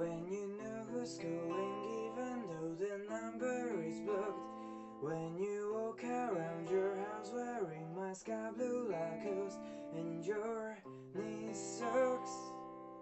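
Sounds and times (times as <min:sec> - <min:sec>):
man singing: 0:00.0 - 0:12.7
guitar strumming: 0:00.0 - 0:13.0.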